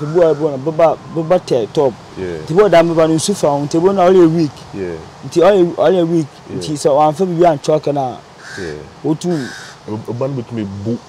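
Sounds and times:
man's voice: 0.0 - 7.6, 8.6 - 11.0
crow cawing: 8.4 - 9.9.

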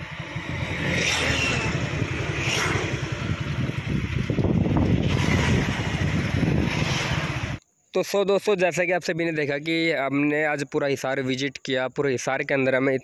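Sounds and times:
vehicle rumbling along road: 0.0 - 7.6
wind rushing over microphone: 0.0 - 7.6.

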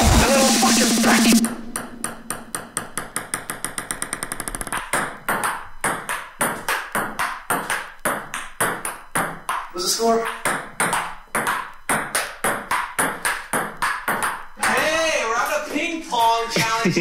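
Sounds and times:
music track: 0.0 - 3.0
ball striking paddle and table: 1.7 - 14.9
ping-pong ball bouncing on table: 1.8 - 14.9.

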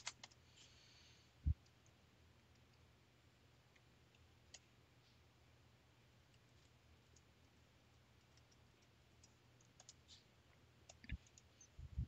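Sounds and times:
faint clicks: 6.3 - 11.7.

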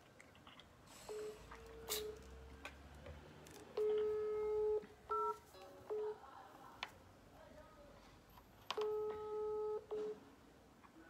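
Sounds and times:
telephone call tone beeps: 1.1 - 2.5, 3.8 - 6.2, 8.8 - 10.2.

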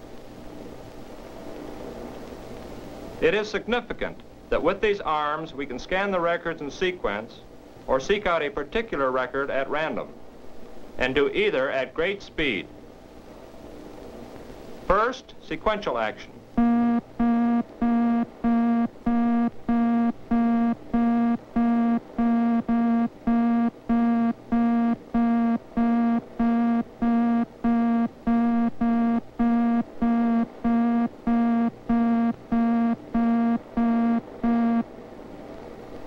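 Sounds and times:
short low buzzy electronic beeps: 16.6 - 34.9.

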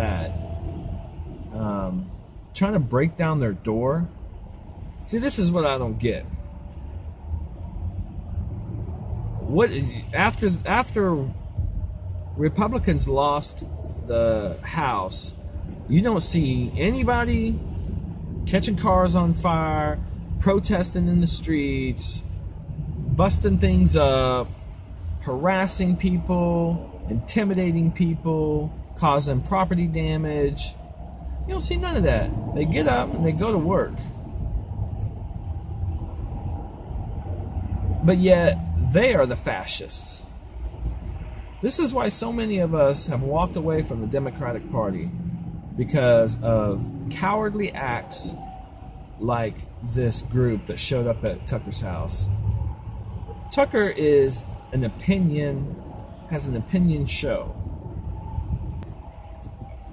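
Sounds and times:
car engine rumble inside cabin: 4.1 - 39.7, 42.0 - 59.9.

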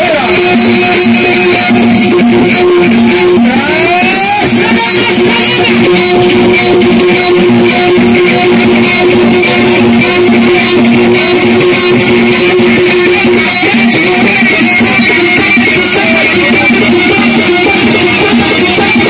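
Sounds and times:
amplified live music: 0.0 - 19.0.

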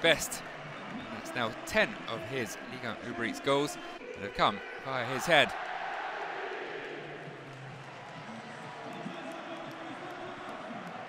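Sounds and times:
stadium crowd voices: 0.0 - 11.0.

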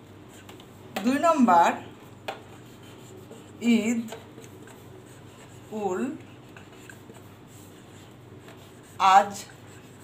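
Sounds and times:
marker writing on whiteboard: 0.3 - 10.0.

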